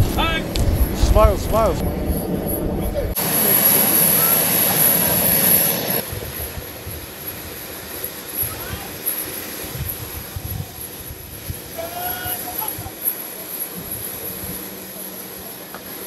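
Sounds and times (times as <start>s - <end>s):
jet turbine whine: 0.0s - 16.0s.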